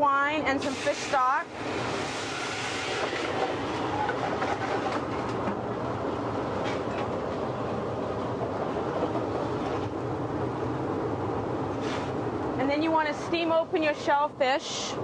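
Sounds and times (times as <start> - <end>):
pans sizzling and hissing: 0.6 - 3.2.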